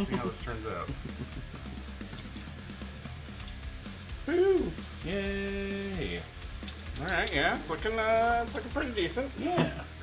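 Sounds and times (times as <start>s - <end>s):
background music: 0.0s - 10.0s
oil sizzling in deep fryer: 1.5s - 9.2s.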